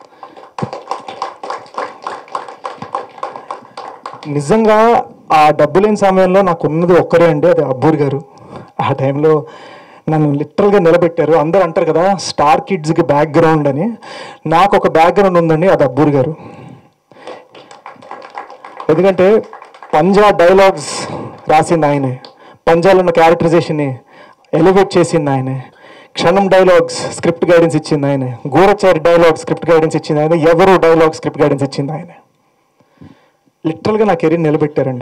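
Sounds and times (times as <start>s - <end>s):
small group clapping: 0.0s - 4.8s, 17.1s - 22.4s
person speaking: 3.2s - 16.5s, 18.8s - 32.3s.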